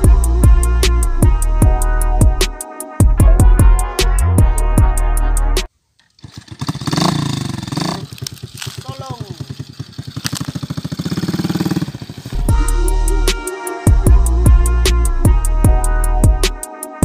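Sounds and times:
background music: 0:00.0 - 0:05.7, 0:12.4 - 0:17.0
small motorcycle engine running: 0:06.1 - 0:12.6
person calling: 0:07.7 - 0:14.0.

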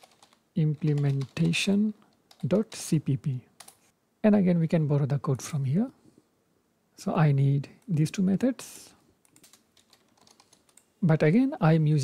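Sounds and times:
computer keyboard clicks: 0:00.0 - 0:01.6, 0:03.6 - 0:03.8, 0:09.2 - 0:10.9.

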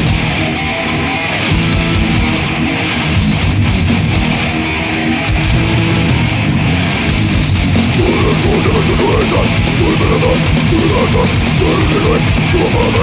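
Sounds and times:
death metal band playing: 0:00.0 - 0:13.0
distorted electric guitars riffing: 0:00.0 - 0:13.0.

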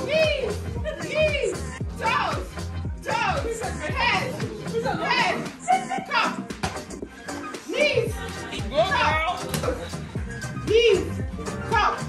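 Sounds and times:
women shouting and shrieking: 0:00.0 - 0:02.4, 0:03.0 - 0:06.4, 0:07.7 - 0:09.3
background music with steady beat: 0:00.0 - 0:12.0
women laughing: 0:00.6 - 0:01.3, 0:03.4 - 0:06.4, 0:07.9 - 0:10.1.

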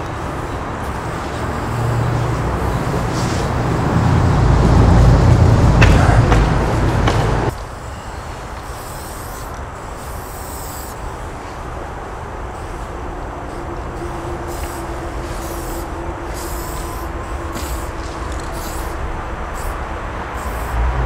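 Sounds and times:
spray paint can hissing: 0:00.0 - 0:05.2, 0:07.5 - 0:21.0
low rumble of road traffic: 0:00.0 - 0:21.0.

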